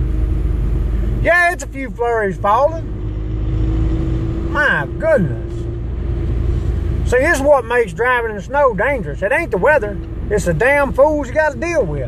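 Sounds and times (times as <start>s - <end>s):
vehicle engine and road rumble: 0.0s - 12.0s.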